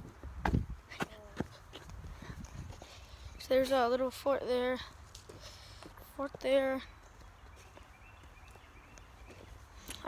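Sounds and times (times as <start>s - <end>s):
footsteps on dirt and dry leaves: 4.8s - 10.0s.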